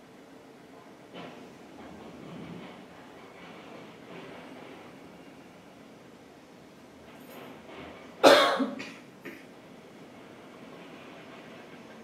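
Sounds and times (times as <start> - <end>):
man coughing: 8.2 - 9.5.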